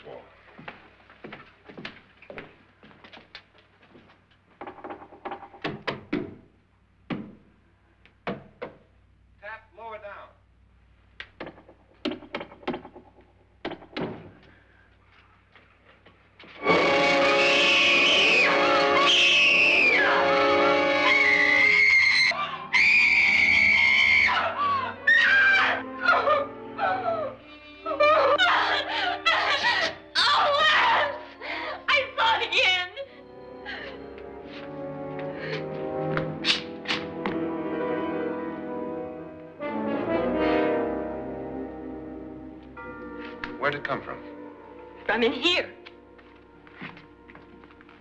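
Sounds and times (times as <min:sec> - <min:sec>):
orchestral music sting: 0:16.6 - 0:21.0
brass-led music: 0:16.6 - 0:21.8, 0:33.3 - 0:48.0
broken cries: 0:16.6 - 0:34.2
woman screaming: 0:17.4 - 0:33.1.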